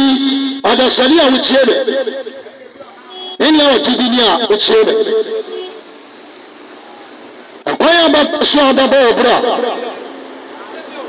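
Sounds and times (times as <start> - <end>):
man's amplified voice: 0.0 - 5.8, 7.6 - 11.0
roadside traffic: 0.0 - 11.0.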